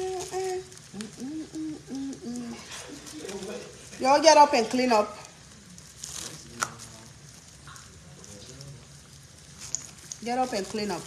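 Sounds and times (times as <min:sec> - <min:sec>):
oil sizzling in a frying pan: 0:00.0 - 0:11.0.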